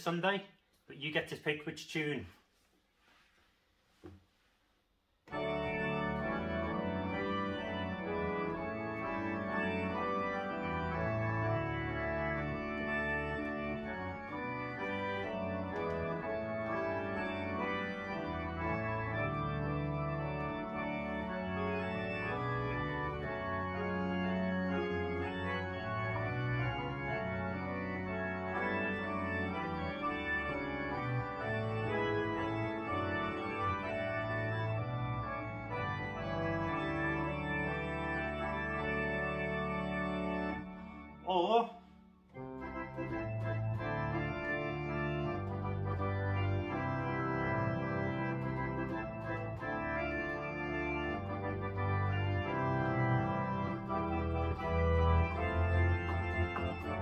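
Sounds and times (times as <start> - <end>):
organ playing hymn: 0.0 - 2.2, 5.3 - 57.0.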